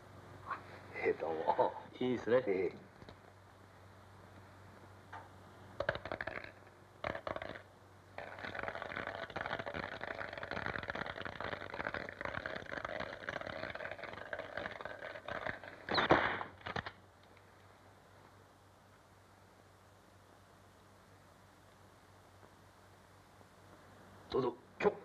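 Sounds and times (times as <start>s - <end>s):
dice rattling in a cup: 5.8s - 15.9s.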